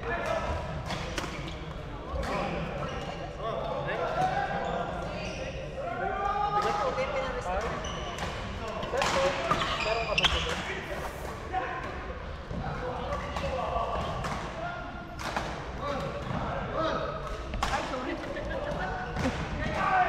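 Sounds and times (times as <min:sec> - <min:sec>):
echoing indistinct voices: 0:00.0 - 0:20.0.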